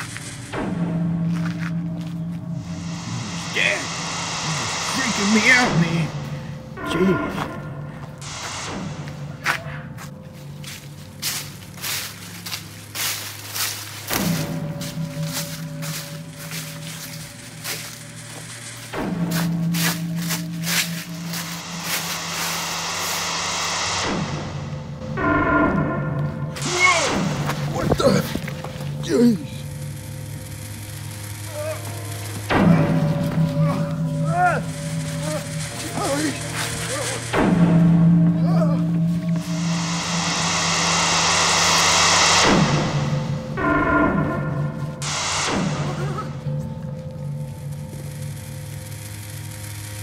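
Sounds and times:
footsteps: 0.0s - 25.2s, 26.1s - 29.0s, 32.2s - 48.0s
low music drone: 0.0s - 50.0s
loud rushing whoosh: 2.6s - 6.9s, 20.6s - 27.8s, 39.4s - 46.0s
falling pitch sweep: 2.6s - 9.6s, 38.7s - 46.5s.

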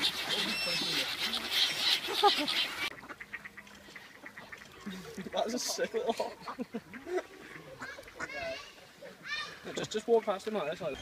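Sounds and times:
ducks quacking faintly: 0.0s - 11.0s.

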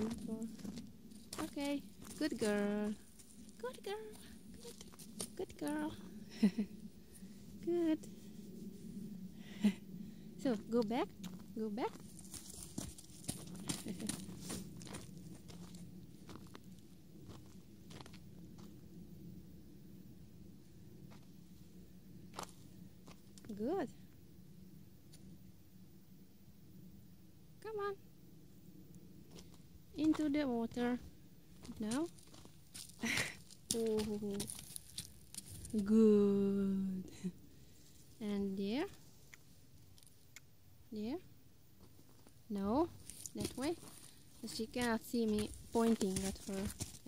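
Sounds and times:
woman speaking: 0.0s - 0.8s, 1.4s - 3.0s, 3.6s - 6.1s, 7.6s - 8.1s, 10.4s - 12.0s, 13.6s - 14.2s, 23.4s - 24.0s, 27.6s - 28.0s, 30.0s - 31.0s, 31.7s - 32.1s, 33.0s - 34.5s, 35.7s - 37.3s, 38.2s - 39.0s, 40.9s - 41.2s, 42.5s - 43.8s, 44.4s - 46.8s
horse hooves on snow: 11.2s - 16.7s, 31.5s - 35.7s, 43.0s - 47.0s.

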